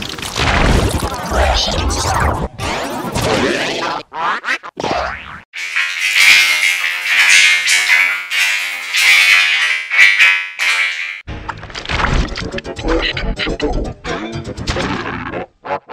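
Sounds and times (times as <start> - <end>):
shrill buzzing with sharp hits: 5.6 - 11.2.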